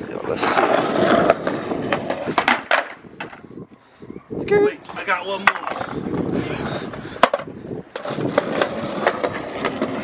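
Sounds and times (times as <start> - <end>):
skateboard wheels rolling on concrete: 0.0 - 3.8, 4.4 - 10.0.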